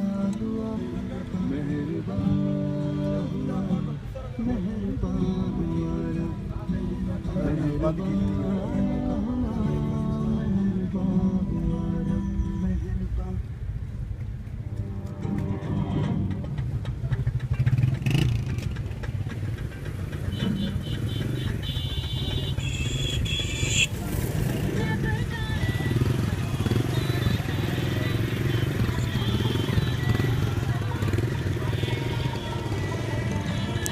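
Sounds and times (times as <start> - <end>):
voices: 0.0 - 13.4, 15.2 - 33.9
road traffic rumbling: 0.0 - 33.9.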